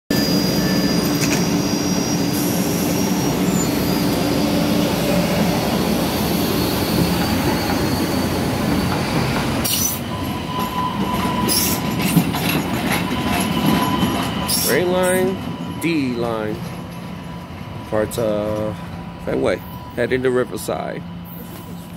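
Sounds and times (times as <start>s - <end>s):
thin wheel squeal: 0.1s - 5.1s, 6.1s - 15.3s
light-rail train rumble: 0.1s - 21.9s
wheels clicking over rail joints: 11.0s - 14.6s.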